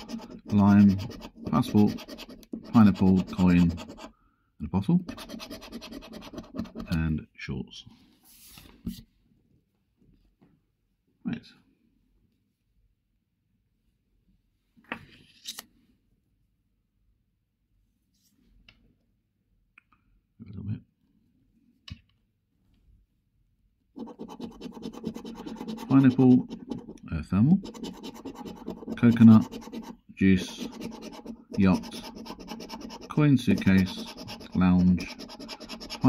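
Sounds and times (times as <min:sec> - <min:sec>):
coin scraping scratch card: 0:00.0 - 0:04.1, 0:05.1 - 0:06.9, 0:24.0 - 0:27.0, 0:27.6 - 0:36.0.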